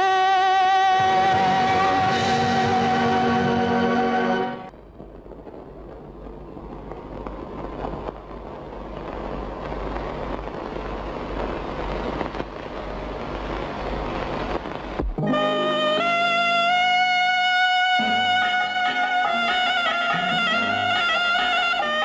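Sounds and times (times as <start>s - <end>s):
film soundtrack hiss: 0.0s - 22.0s.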